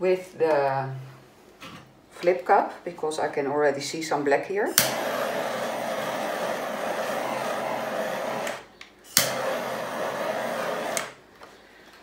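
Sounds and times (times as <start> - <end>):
torch flame hissing: 4.8 - 11.2
torch igniter click: 4.8 - 11.2.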